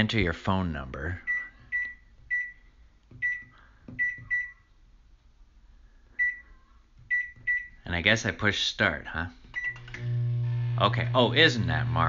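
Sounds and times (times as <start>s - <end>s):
microwave keypad beeping: 3.2s - 4.6s, 7.1s - 7.8s, 9.6s - 9.9s.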